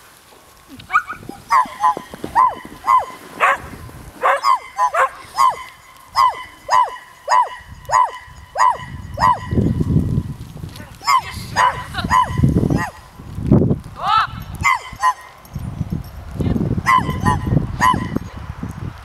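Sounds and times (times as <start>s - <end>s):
dog barking high: 0.9s - 9.7s, 11.0s - 13.1s, 14.6s - 15.4s, 16.8s - 18.2s.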